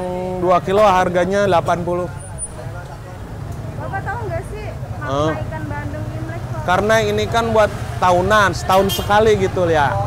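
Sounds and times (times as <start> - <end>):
man talking: 0.0 - 3.2, 6.7 - 10.0
street traffic rumble: 0.0 - 10.0.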